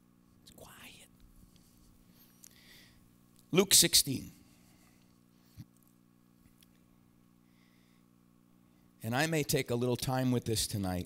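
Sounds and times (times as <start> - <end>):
faint breathy whisper: 0.4 - 1.2.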